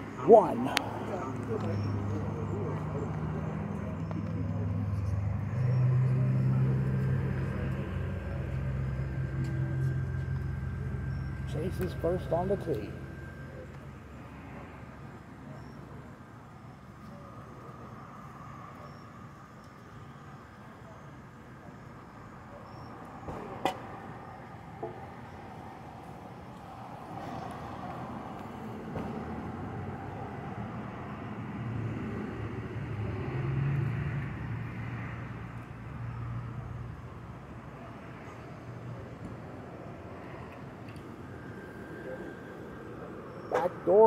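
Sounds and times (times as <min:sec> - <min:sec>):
road traffic noise: 0:00.0 - 0:44.0
vehicle engine hum: 0:00.0 - 0:44.0.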